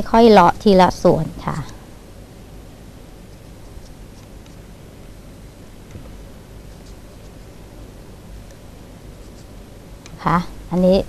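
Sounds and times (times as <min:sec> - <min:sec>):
woman speaking: 0:00.0 - 0:01.8, 0:10.2 - 0:11.0.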